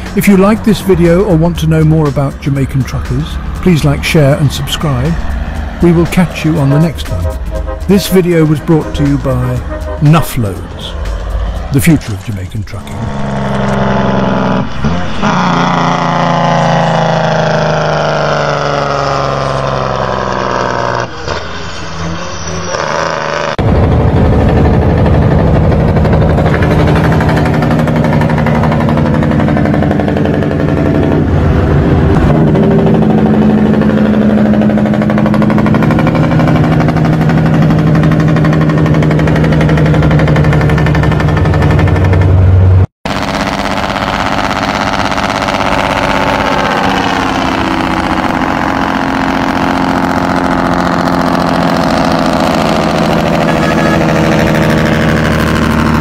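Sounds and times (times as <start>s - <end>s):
diesel truck engine brake: 12.8s - 56.0s.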